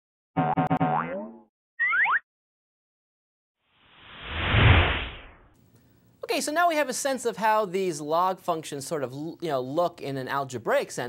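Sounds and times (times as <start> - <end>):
rising whistle-like slides: 3.8 - 5.5
whoosh: 3.8 - 5.6.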